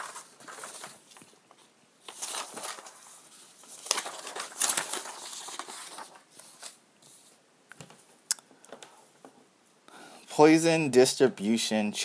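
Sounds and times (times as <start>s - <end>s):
paper sheets rustling: 0.0s - 7.4s.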